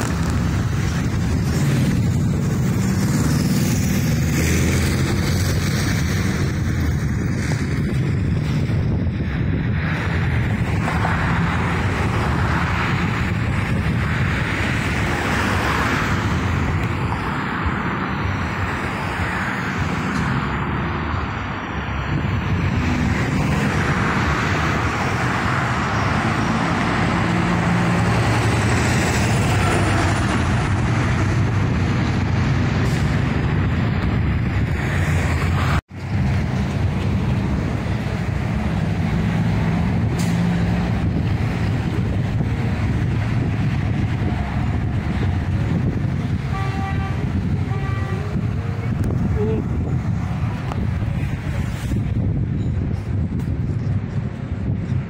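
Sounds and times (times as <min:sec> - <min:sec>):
road traffic rumble: 0:00.0 - 0:55.0.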